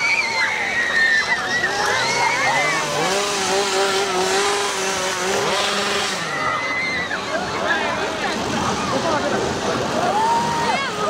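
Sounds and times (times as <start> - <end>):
chainsaw engine running: 1.4 - 11.0.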